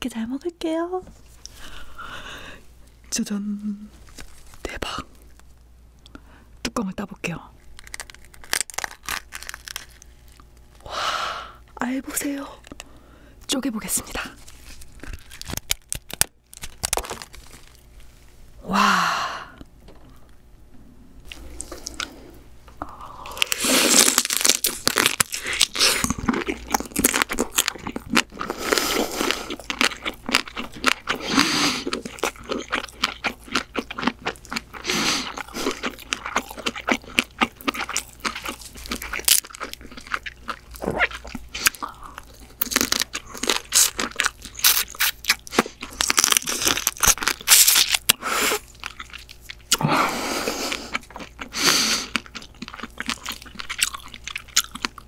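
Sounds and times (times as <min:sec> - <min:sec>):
wet chewing: 0:07.6 - 0:10.6, 0:14.2 - 0:17.9, 0:21.2 - 0:22.2, 0:23.3 - 0:49.8, 0:50.4 - 0:55.0
crab shell crunching: 0:07.6 - 0:10.8, 0:12.5 - 0:13.0, 0:14.2 - 0:18.0, 0:22.8 - 0:49.8, 0:50.7 - 0:55.0.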